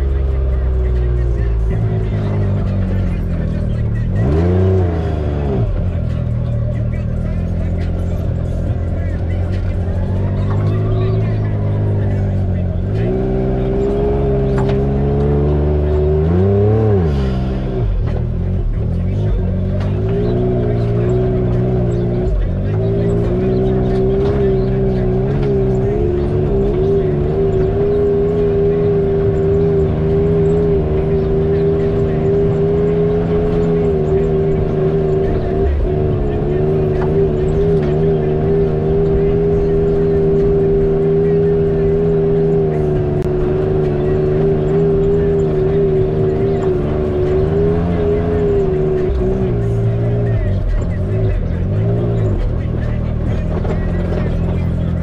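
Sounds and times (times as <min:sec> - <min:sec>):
utv engine running at low revs: 0:00.0 - 0:55.0.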